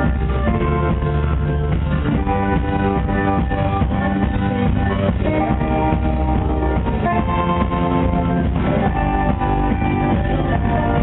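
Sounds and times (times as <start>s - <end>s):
bass and drums: 0.0s - 11.0s
electric guitars sustaining chords: 0.0s - 11.0s.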